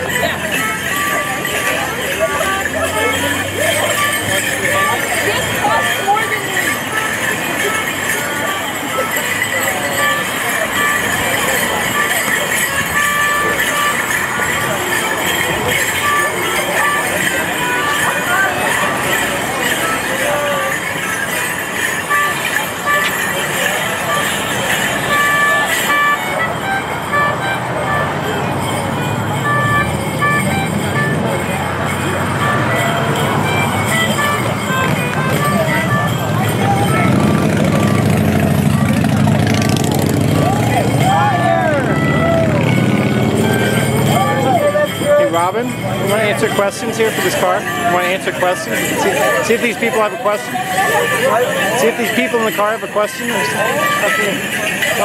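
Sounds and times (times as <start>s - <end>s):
crowd chatter: 0.0s - 55.0s
folk dance tune on melody instrument: 0.0s - 55.0s
jingling leg bells: 0.0s - 55.0s.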